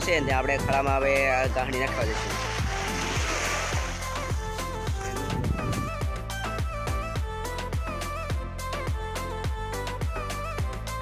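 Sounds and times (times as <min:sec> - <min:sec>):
deep pitch-dropping drum beat: 0:00.3 - 0:07.9.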